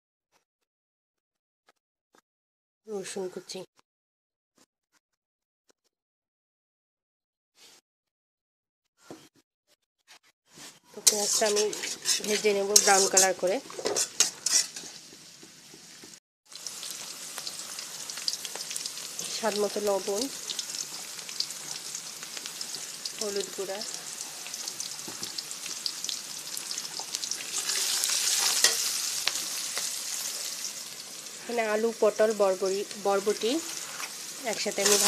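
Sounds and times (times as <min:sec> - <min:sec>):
metal spatula scraping a pan: 0:10.1 - 0:15.2, 0:18.8 - 0:22.9, 0:26.6 - 0:30.6, 0:33.2 - 0:35.0
vegetables sizzling in oil: 0:11.0 - 0:35.0.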